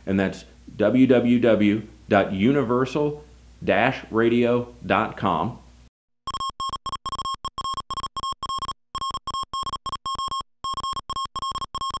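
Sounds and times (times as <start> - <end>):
morse code beeps: 6.2 - 12.0.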